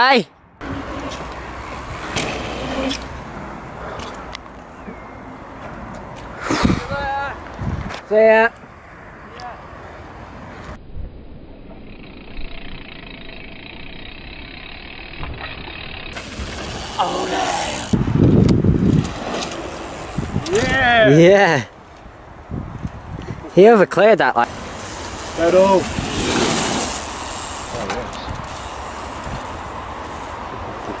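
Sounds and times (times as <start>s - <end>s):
bike tyres rolling over dirt: 0.6s - 5.0s, 11.4s - 21.2s, 24.5s - 31.0s
wind rushing on microphone: 6.3s - 8.1s, 16.3s - 21.1s, 22.0s - 23.6s, 25.4s - 27.0s, 27.9s - 31.0s.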